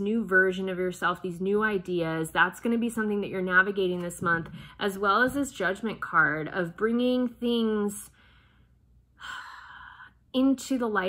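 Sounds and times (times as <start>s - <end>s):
woman speaking: 0.0s - 8.1s, 10.3s - 11.0s
faint breath out: 4.4s - 4.8s
woman breathing in: 8.1s - 10.3s.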